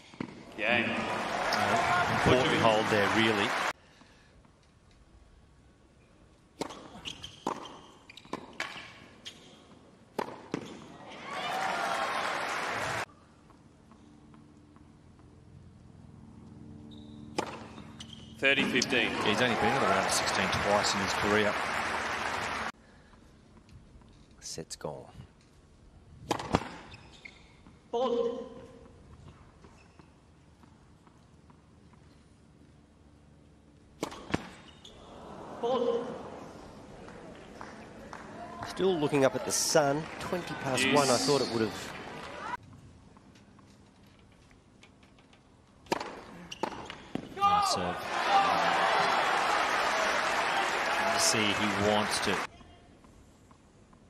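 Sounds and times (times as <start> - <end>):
racket hitting tennis ball: 10.1 - 10.8, 17.3 - 17.8, 26.2 - 26.9, 34.0 - 34.6, 45.8 - 47.4
tennis racket hitting ball: 34.0 - 34.6, 45.9 - 46.8.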